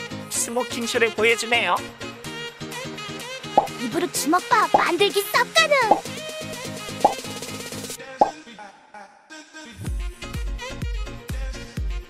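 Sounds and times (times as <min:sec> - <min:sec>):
background music with steady beat: 0:09.8 - 0:12.0.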